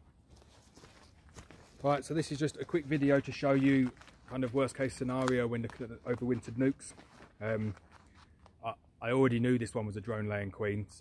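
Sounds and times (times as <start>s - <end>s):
footsteps on leaf litter: 0.3s - 8.3s
man speaking: 1.8s - 7.8s, 8.6s - 11.0s.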